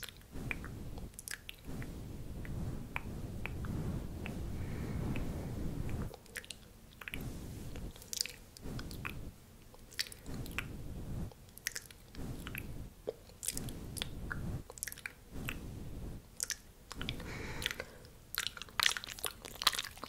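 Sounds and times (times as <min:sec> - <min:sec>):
wet chewing mouth sounds: 0:00.0 - 0:15.7, 0:16.3 - 0:20.0
mouth clicks and smacks: 0:00.0 - 0:20.0.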